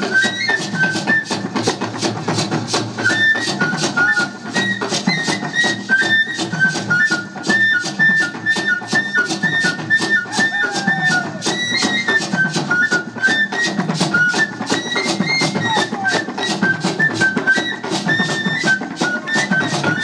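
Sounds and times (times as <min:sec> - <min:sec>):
flute melody: 0:00.0 - 0:20.0
hand drums playing steady beat: 0:00.0 - 0:20.0.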